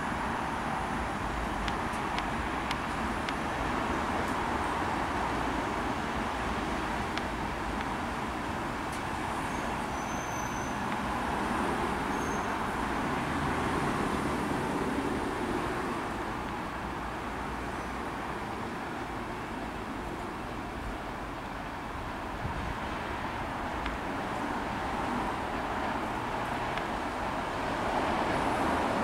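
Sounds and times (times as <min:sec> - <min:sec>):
diesel locomotive hauling train: 0:00.0 - 0:29.0
train wheels on rails: 0:00.0 - 0:29.0.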